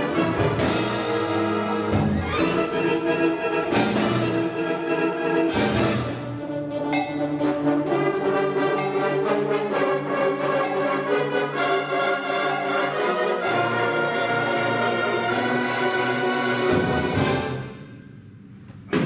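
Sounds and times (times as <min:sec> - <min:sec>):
concert band playing: 0:05.4 - 0:17.6
drum and cymbal strokes: 0:05.6 - 0:13.4.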